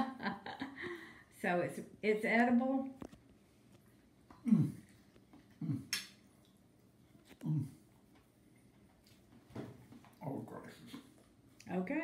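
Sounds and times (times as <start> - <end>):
man humming mm while eating: 4.3 - 6.1, 7.3 - 7.9.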